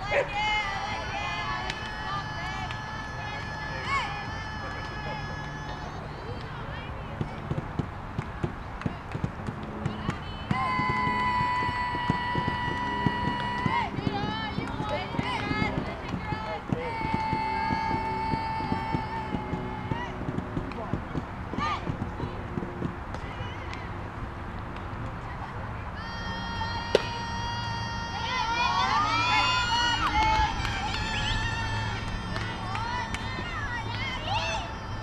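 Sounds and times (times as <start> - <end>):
young voices chanting cheers: 0.0 - 7.4, 9.9 - 22.4, 25.8 - 35.0
scattered claps: 1.5 - 23.9, 29.7 - 34.5
shouted syllables: 26.0 - 35.0.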